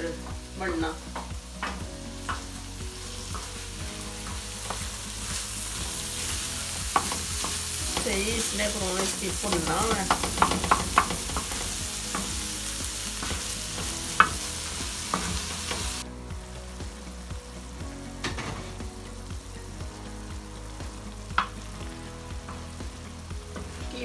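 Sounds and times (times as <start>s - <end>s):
meat sizzling on an iron pan: 0.0s - 24.0s
wooden spatula scraping: 3.3s - 16.0s
spatula knocking on iron: 9.0s - 12.4s, 13.2s - 14.5s.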